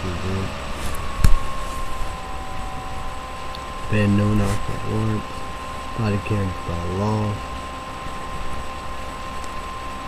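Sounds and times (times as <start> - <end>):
background hiss and hum: 0.0 - 10.0
faint steady tones: 0.0 - 10.0.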